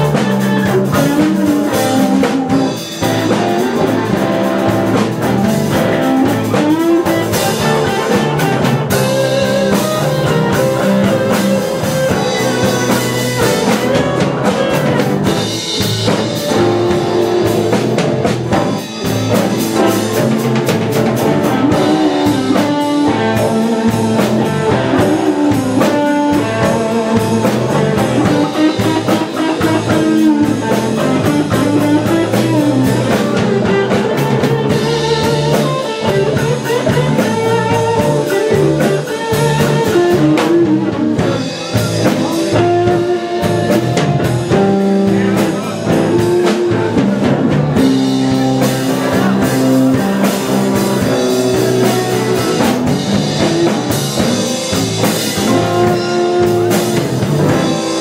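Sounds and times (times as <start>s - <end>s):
drum kit: 0.0s - 58.0s
guitars: 0.0s - 58.0s
upright double bass: 0.0s - 58.0s.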